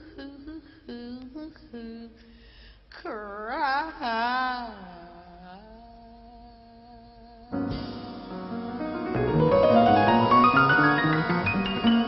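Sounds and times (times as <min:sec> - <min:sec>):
woman singing: 0:00.0 - 0:07.7
slow jazz ballad: 0:07.6 - 0:10.4.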